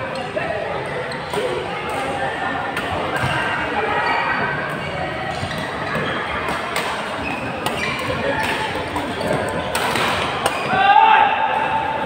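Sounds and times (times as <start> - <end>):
chatter in a sports hall: 0.0 - 12.0
rackets hitting shuttlecock: 5.3 - 10.8.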